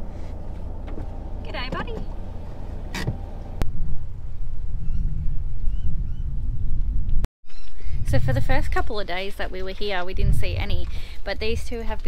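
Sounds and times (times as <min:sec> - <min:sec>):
car engine rumble: 0:00.0 - 0:04.2.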